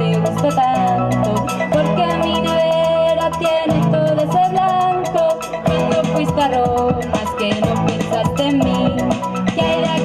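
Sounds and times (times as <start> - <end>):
bass guitar: 0.0 - 10.0
drum kit with fast hi-hat: 0.0 - 10.0
sustained melody line: 0.0 - 10.0.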